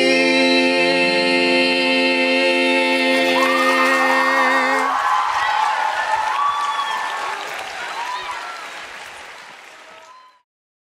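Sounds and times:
voices singing together: 0.0 - 5.4
whoops and cheers: 3.4 - 4.2, 4.8 - 8.8, 9.7 - 10.4
audience applause: 3.4 - 10.4.

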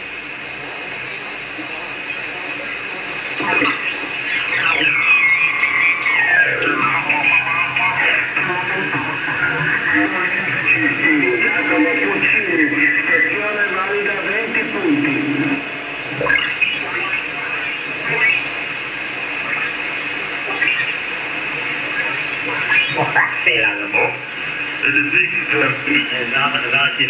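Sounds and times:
radio whistling tones: 0.0 - 26.7
radio band noise: 0.0 - 27.0
radio voices: 1.2 - 20.6, 21.2 - 27.0.

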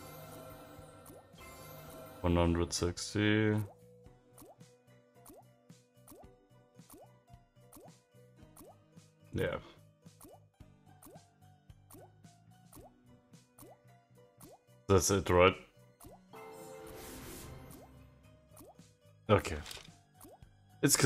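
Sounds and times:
soft background music: 0.0 - 21.0.

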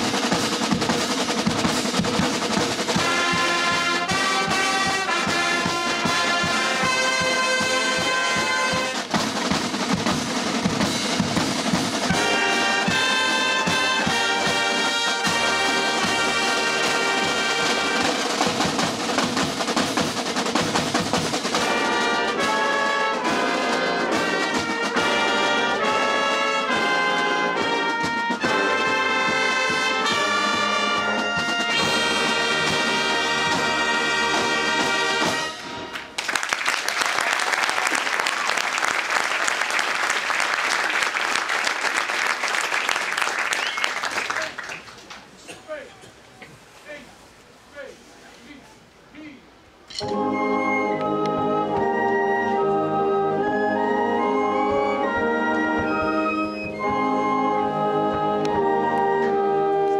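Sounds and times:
brass band chords: 0.0 - 36.2, 49.8 - 59.9
snare and bass drum: 0.0 - 36.2
applause: 35.9 - 45.3.

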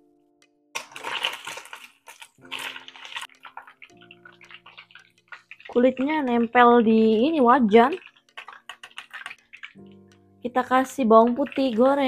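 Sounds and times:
chicken frying in hot oil: 0.8 - 6.6, 7.7 - 9.9, 11.1 - 12.0
tongs stirring: 0.8 - 12.0.

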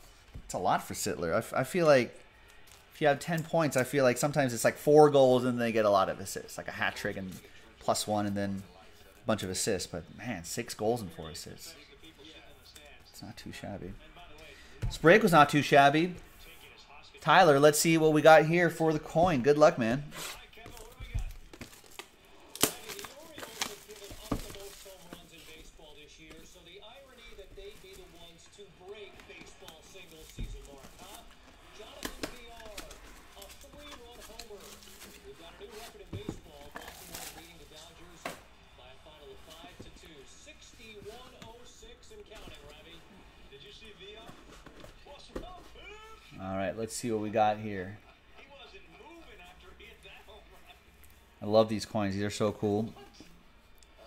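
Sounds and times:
plastic shrink-wrap crinkling: 20.8 - 26.0.

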